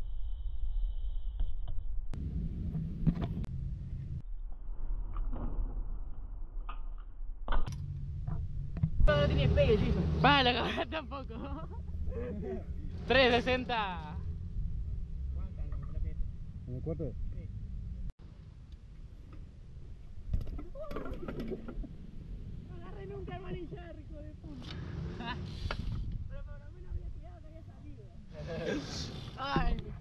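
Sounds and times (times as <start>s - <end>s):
steady low rumble: 1.9s - 5.1s, 7.2s - 20.4s, 21.6s - 28.3s.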